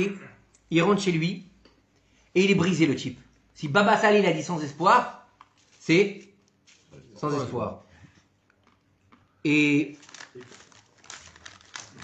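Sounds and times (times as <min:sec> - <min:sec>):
rustling and crackling: 0:09.9 - 0:12.0.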